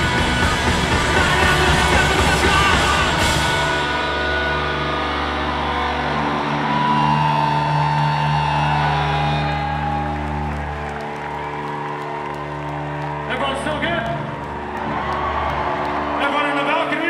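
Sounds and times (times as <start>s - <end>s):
amp feedback: 0.0s - 11.2s
electric guitars droning: 0.0s - 17.0s.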